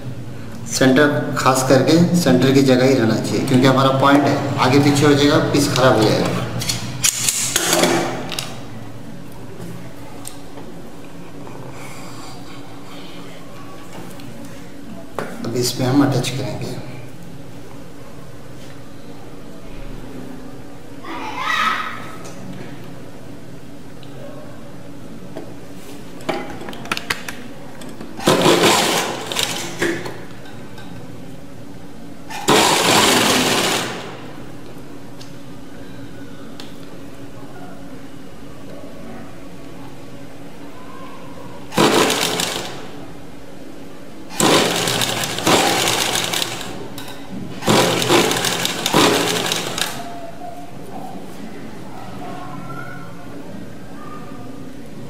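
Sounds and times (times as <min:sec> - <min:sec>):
sewing machine stitching: 0:28.2 - 0:29.8, 0:32.3 - 0:34.2, 0:41.7 - 0:42.9, 0:44.3 - 0:46.8, 0:47.6 - 0:50.1.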